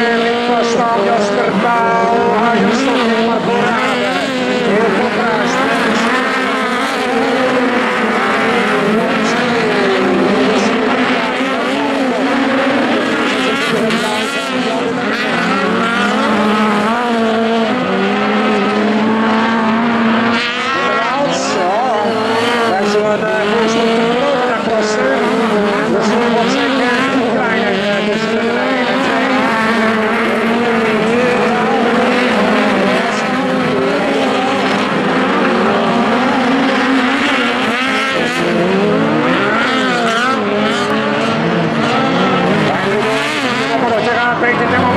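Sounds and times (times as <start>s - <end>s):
racing car engines revving: 0.0s - 44.9s.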